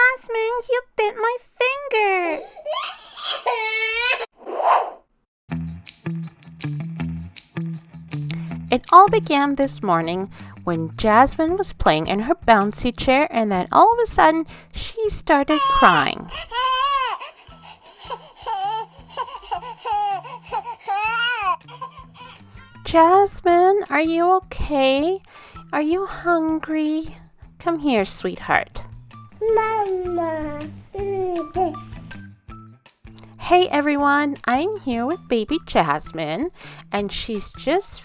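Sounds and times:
infant crying: 0:02.4 - 0:04.3, 0:15.5 - 0:22.8
child squealing: 0:02.7 - 0:04.3, 0:18.1 - 0:21.6
child wailing: 0:02.7 - 0:04.3, 0:18.1 - 0:22.4
background music with low bass: 0:05.5 - 0:38.0.

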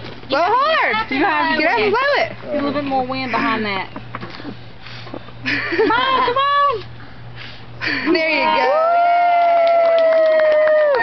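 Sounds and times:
high drawn-out cheer: 0:08.4 - 0:11.0.

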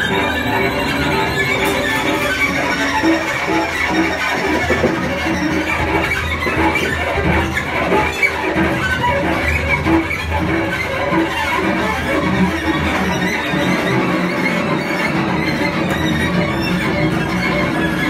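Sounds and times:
improvised string and percussion music: 0:00.0 - 0:18.0.

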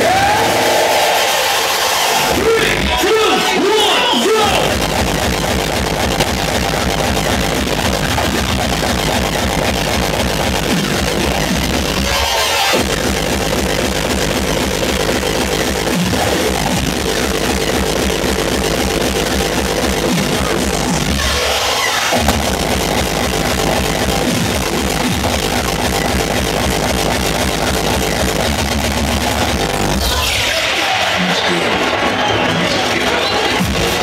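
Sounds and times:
hardcore electronic dance music: 0:00.0 - 0:34.0
pounding kick drum: 0:04.7 - 0:09.6, 0:22.2 - 0:25.7.

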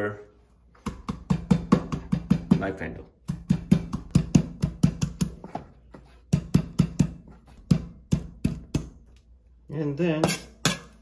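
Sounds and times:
knife handle pounding garlic on wood: 0:00.8 - 0:05.7, 0:06.3 - 0:09.0.

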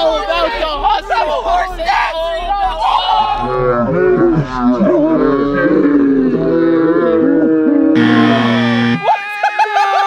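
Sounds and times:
men yelling with effort: 0:00.0 - 0:03.6, 0:08.0 - 0:10.0.

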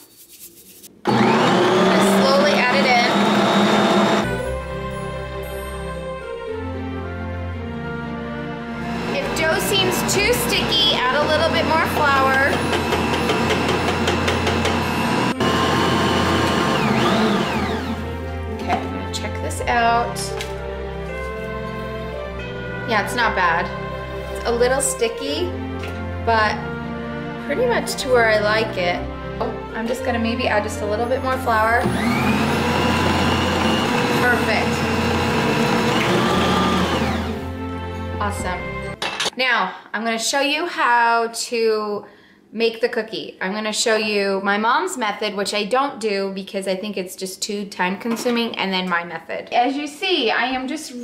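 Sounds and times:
background music: 0:00.7 - 0:42.0
beater turning through dough: 0:01.0 - 0:04.4, 0:08.8 - 0:18.8, 0:31.6 - 0:37.5
stand mixer motor running: 0:01.1 - 0:04.4, 0:08.9 - 0:18.2, 0:31.8 - 0:37.5.

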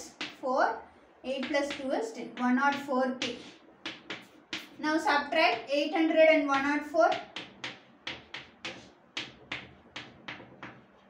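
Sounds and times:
chalk tapping on blackboard: 0:00.0 - 0:00.4, 0:01.4 - 0:05.7, 0:06.6 - 0:11.0.

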